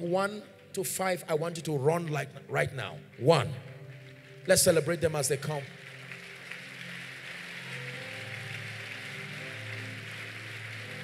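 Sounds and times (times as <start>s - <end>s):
soft music of low chords: 0.0s - 11.0s
crowd noise in a hall: 2.5s - 11.0s.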